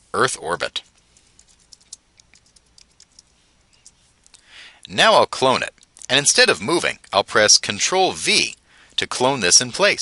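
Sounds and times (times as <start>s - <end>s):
computer keyboard typing: 1.2s - 4.0s.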